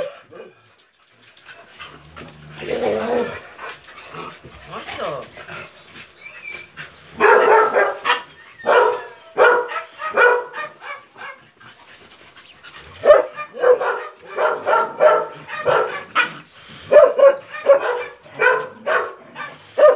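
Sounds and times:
dogs barking: 0.0s - 0.6s, 6.4s - 11.8s, 12.8s - 19.9s.

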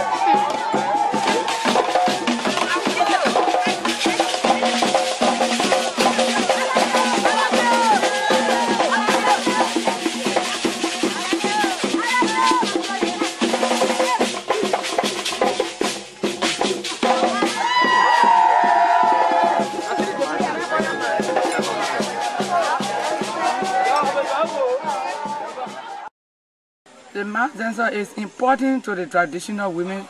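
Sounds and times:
women singing and calling: 0.0s - 14.3s
hand drums and rattles: 0.0s - 25.8s.

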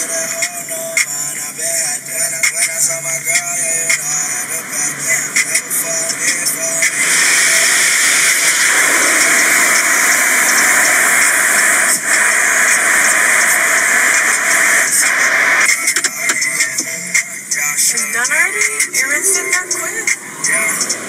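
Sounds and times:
car wash water spraying: 0.0s - 21.0s.

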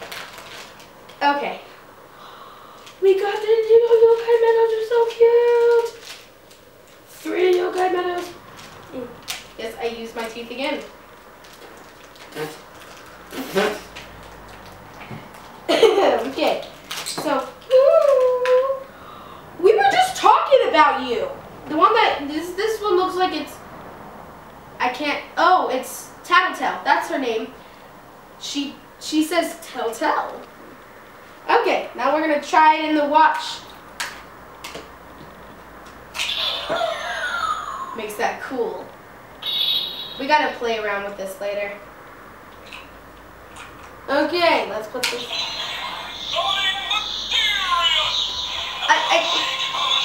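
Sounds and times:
girl giggling: 15.7s - 16.3s, 36.5s - 38.1s, 48.7s - 50.0s
electronic toy sound effect: 36.2s - 38.0s, 39.4s - 40.4s, 45.0s - 50.0s.

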